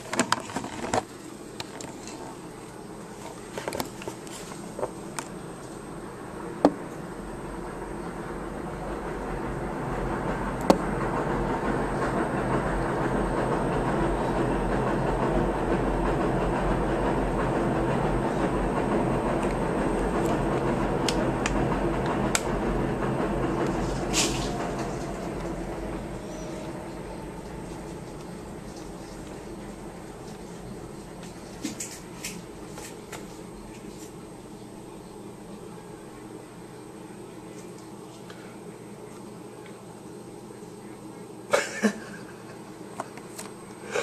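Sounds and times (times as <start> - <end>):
low rumbling noise: 5.0 - 32.7.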